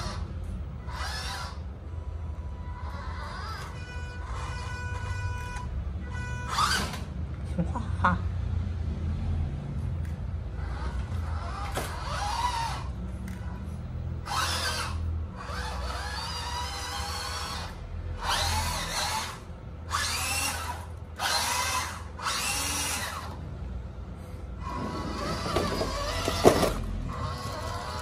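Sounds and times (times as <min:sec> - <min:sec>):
toy truck electric motor whining: 0:00.0 - 0:07.2, 0:10.5 - 0:28.0.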